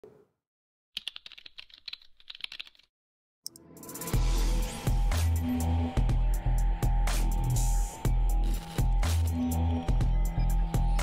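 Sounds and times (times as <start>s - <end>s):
computer keyboard typing: 1.0s - 2.9s.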